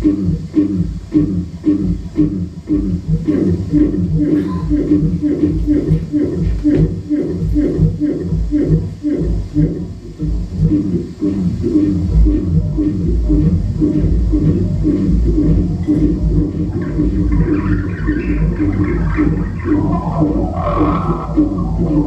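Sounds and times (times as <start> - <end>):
deep bass drone: 0.0 - 22.0
looped voice-like low pulse: 0.0 - 22.0
grainy electronic layer: 9.0 - 22.0.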